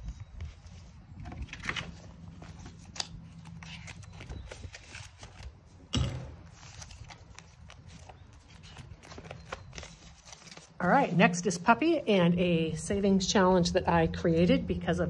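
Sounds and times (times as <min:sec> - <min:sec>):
paper and plastic rustling: 0:00.0 - 0:05.8, 0:06.4 - 0:11.0.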